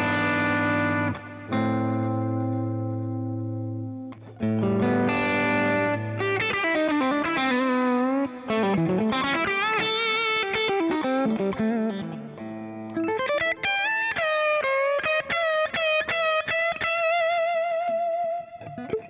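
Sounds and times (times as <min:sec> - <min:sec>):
overdriven electric guitar lead: 0:00.0 - 0:19.0.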